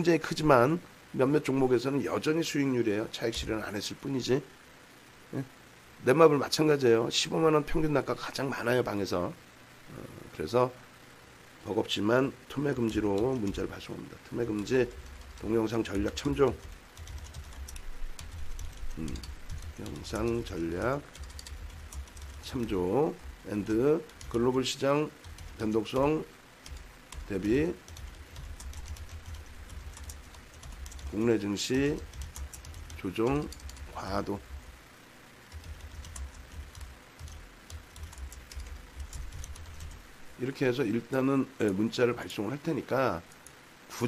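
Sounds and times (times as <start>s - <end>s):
computer keyboard typing: 12.7s - 34.7s, 35.5s - 40.1s.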